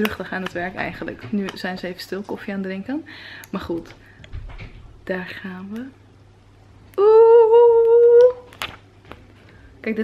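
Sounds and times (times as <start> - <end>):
woman humming: 6.9 - 8.5.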